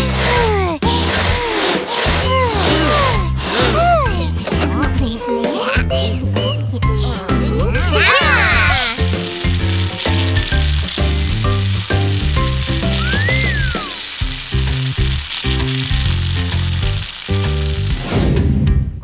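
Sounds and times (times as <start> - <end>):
air hissing out of balloons: 0.0 - 4.0, 8.2 - 18.2
cartoon background music: 0.0 - 19.0
rising and falling whistle: 13.0 - 14.0
warbling squeal: 13.0 - 14.0.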